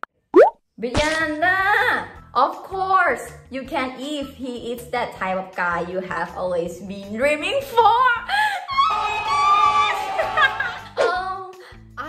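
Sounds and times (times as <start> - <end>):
woman's voice: 0.8 - 8.3, 11.0 - 11.7.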